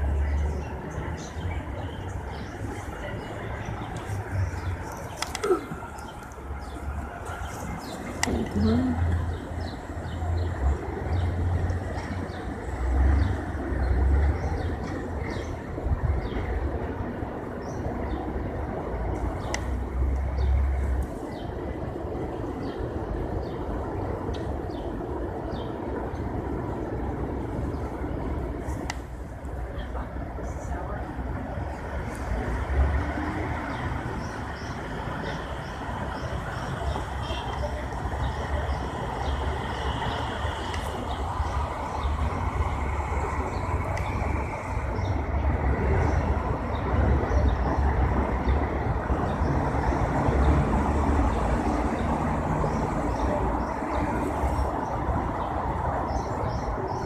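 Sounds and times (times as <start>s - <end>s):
city street traffic rumble: 0.0s - 57.0s.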